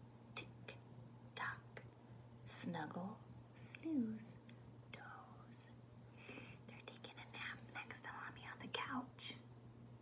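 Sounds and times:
woman whispering softly: 0:01.4 - 0:01.9, 0:03.6 - 0:05.8, 0:06.7 - 0:09.4.

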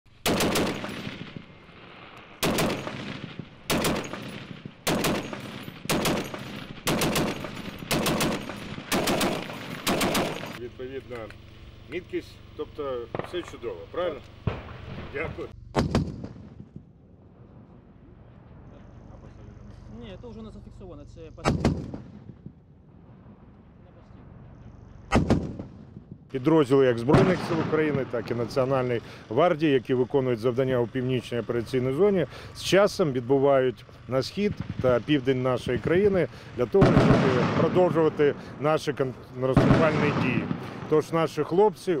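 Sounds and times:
heavy machine gun bursts: 0:00.1 - 0:01.7, 0:02.4 - 0:10.6, 0:26.5 - 0:33.1, 0:33.8 - 0:41.5.

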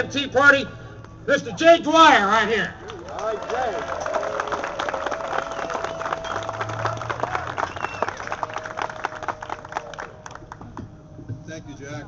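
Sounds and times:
crowd applauding: 0:02.8 - 0:10.6.

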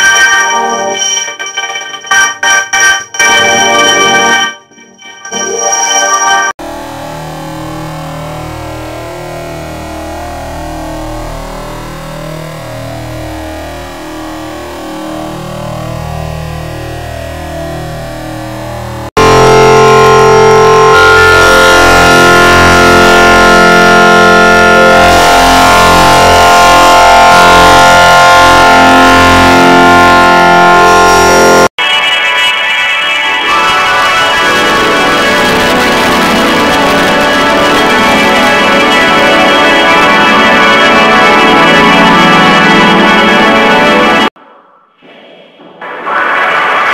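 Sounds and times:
choppy warbling garbled audio: 0:00.0 - 0:06.5, 0:44.4 - 0:46.9
distorted wall of tones and noise: 0:00.0 - 0:46.9.

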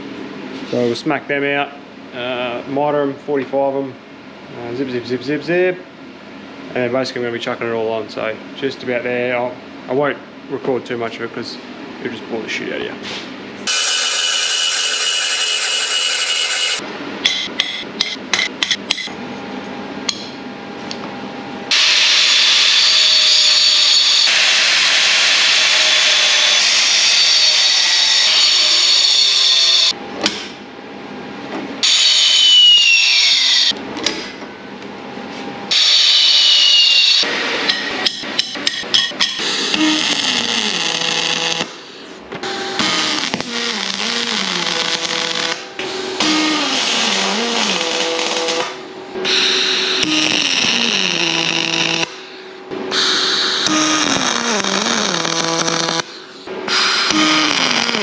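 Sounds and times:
angle grinder cutting metal tube: 0:13.7 - 0:16.8, 0:21.7 - 0:29.9, 0:39.7 - 0:41.6, 0:42.8 - 0:45.6, 0:46.2 - 0:52.1, 0:53.0 - 0:58.0.

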